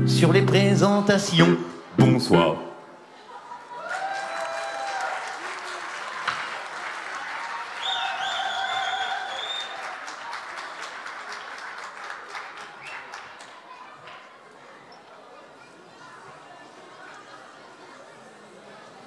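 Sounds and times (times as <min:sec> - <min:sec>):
audience applauding and cheering: 0:03.6 - 0:13.7.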